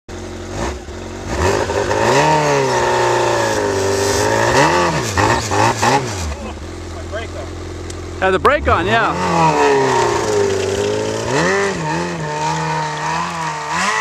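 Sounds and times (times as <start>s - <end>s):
snowmobile engine revving: 0.5s - 14.0s.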